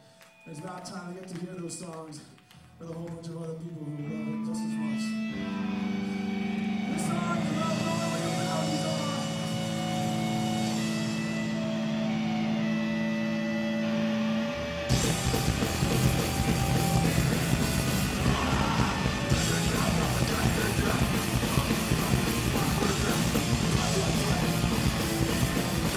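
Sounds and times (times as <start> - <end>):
electric guitars ringing: 3.8 - 25.9
punk band playing: 5.4 - 25.9.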